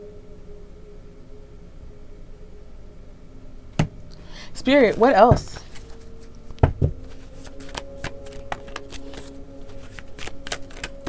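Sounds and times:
cards being shuffled: 0:04.8 - 0:11.0.

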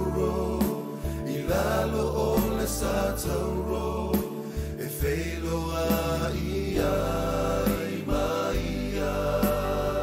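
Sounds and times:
low instrumental backing: 0:00.0 - 0:10.0
voices singing a hymn: 0:00.0 - 0:10.0.

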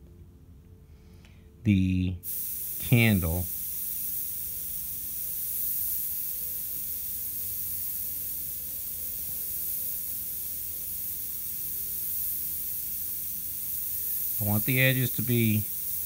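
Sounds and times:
faint steady hum: 0:00.0 - 0:16.0
airbrush spraying hiss: 0:02.2 - 0:16.0.

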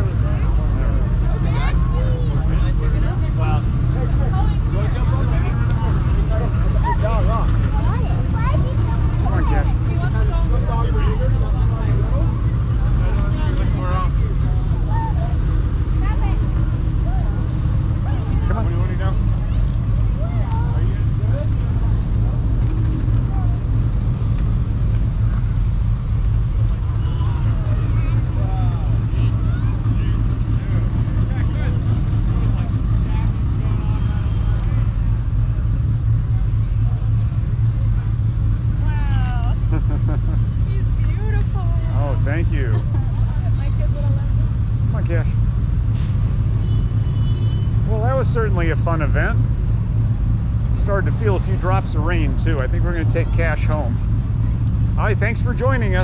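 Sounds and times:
steady low rumble: 0:00.0 - 0:56.0.

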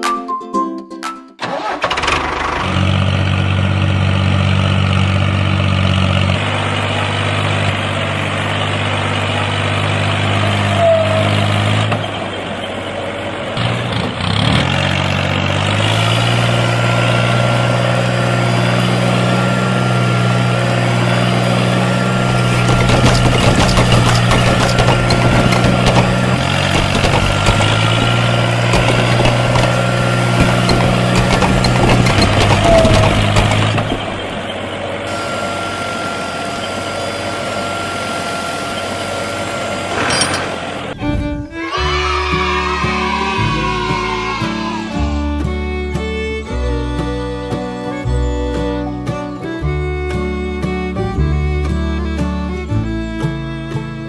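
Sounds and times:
plucked guitar-like notes: 0:00.0 - 0:01.8, 0:41.0 - 0:54.0
tractor engine running: 0:01.4 - 0:54.0.

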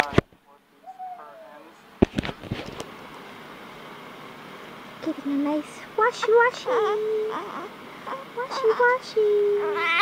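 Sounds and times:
newborn baby crying: 0:06.3 - 0:10.0.

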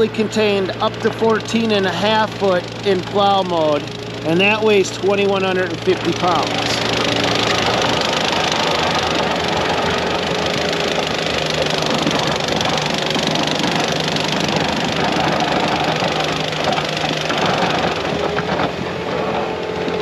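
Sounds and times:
diesel engine running under load: 0:00.0 - 0:20.0
plow blade scraping snow: 0:00.0 - 0:20.0.

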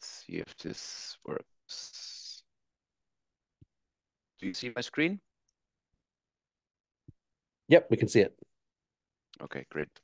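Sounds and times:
man asking a question: 0:07.7 - 0:08.4.

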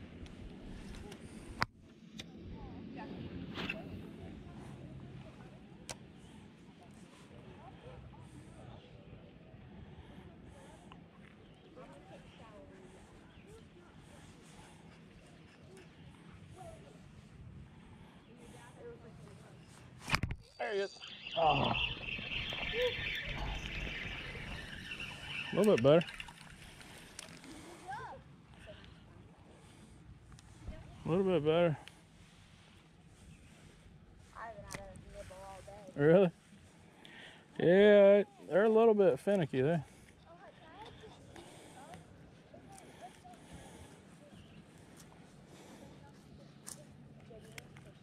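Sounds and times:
fishing reel whirring: 0:20.8 - 0:27.6.

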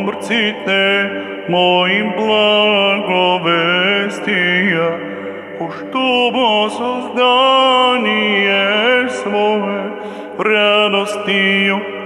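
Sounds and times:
man chanting a hymn: 0:00.0 - 0:12.0.

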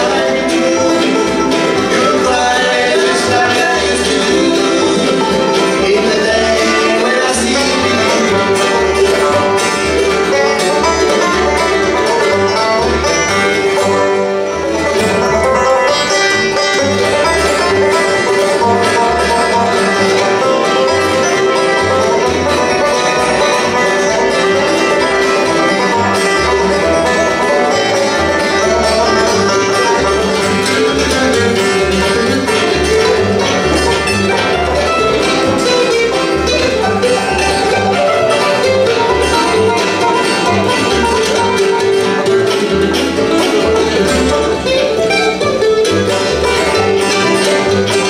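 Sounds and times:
bluegrass band playing: 0:00.0 - 0:48.0.

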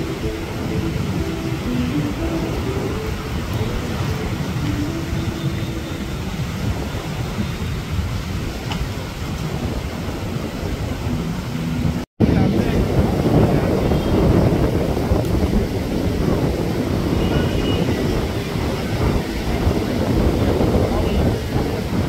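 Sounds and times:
surf breaking on sand beach: 0:00.0 - 0:22.0
wind buffeting microphone: 0:00.0 - 0:22.0.

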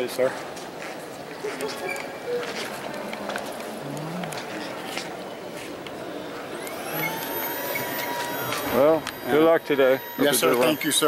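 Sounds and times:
indoor hall noise: 0:00.0 - 0:11.0
motor whine: 0:05.7 - 0:11.0.

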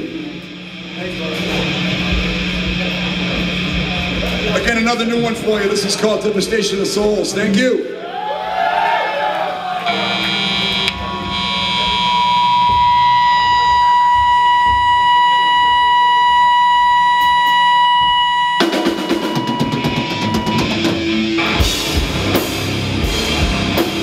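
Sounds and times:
electric guitar feedback tone: 0:00.0 - 0:05.6, 0:09.5 - 0:24.0
metal band playing live: 0:00.0 - 0:07.6, 0:09.8 - 0:24.0.

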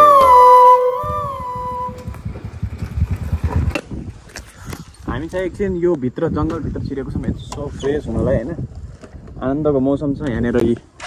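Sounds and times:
flute music: 0:00.0 - 0:02.2.

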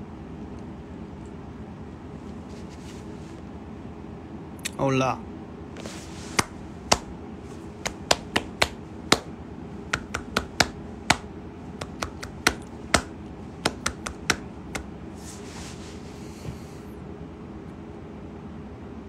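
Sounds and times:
sharp irregular clicks and taps: 0:10.0 - 0:11.2, 0:11.8 - 0:14.8.

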